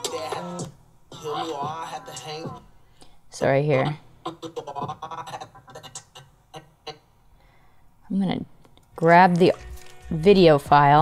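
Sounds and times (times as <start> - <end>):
stuttering song snippets: 0.0 - 2.7, 4.2 - 7.2.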